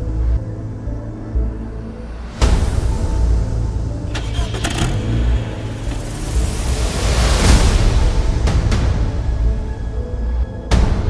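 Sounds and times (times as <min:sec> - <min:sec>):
car engine starting: 0:03.8 - 0:08.6.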